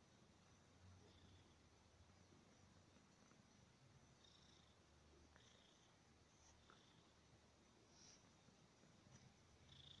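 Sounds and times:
kitten purring: 0.8 - 1.8, 2.4 - 10.0.

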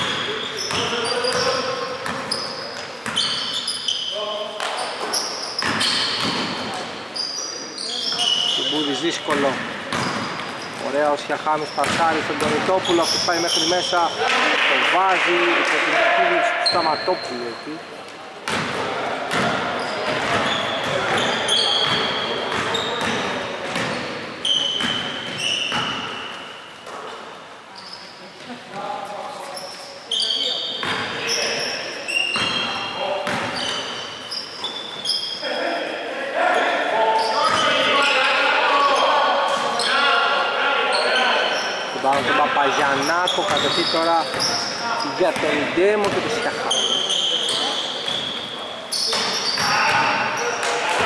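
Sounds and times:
shoe squeaks: 0.0 - 14.2, 16.6 - 17.8, 19.8 - 27.1, 27.8 - 28.3, 29.4 - 35.6, 37.1 - 40.1, 40.9 - 50.6.

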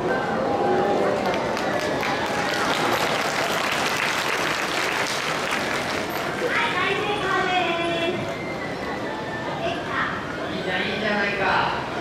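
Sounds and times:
audience applauding: 0.8 - 6.5
voices: 6.1 - 12.0.

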